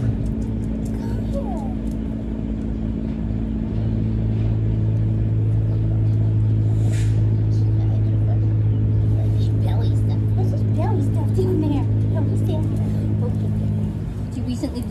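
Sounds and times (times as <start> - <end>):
low motor hum: 0.0 - 14.9.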